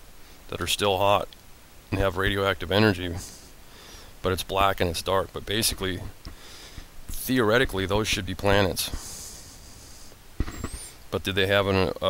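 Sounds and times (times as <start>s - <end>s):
man speaking: 1.9s - 3.4s, 4.2s - 6.2s, 7.1s - 9.0s, 11.1s - 12.0s
man breathing into microphone: 3.2s - 4.2s, 6.3s - 7.0s, 8.8s - 11.0s
sharp click: 10.4s - 11.0s.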